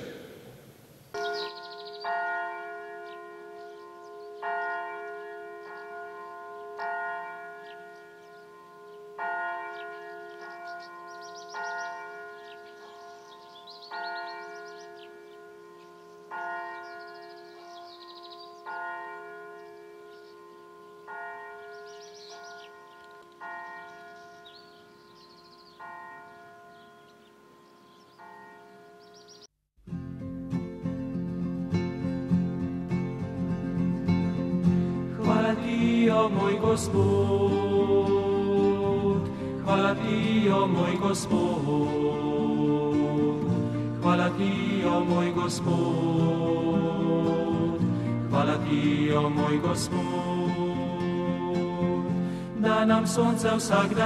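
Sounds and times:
church bell ringing: 1.2s - 29.5s.

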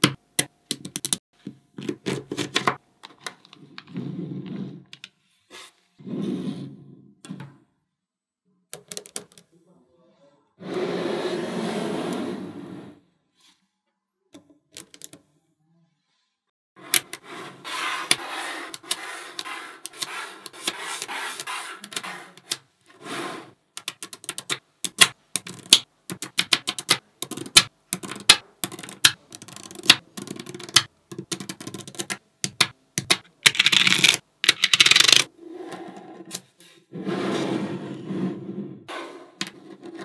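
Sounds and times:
magnetic balls clicking together: 23.8s - 35.3s.

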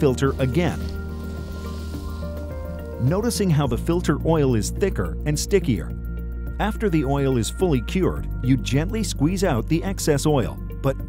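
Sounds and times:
background music sustained tones: 0.0s - 11.0s.

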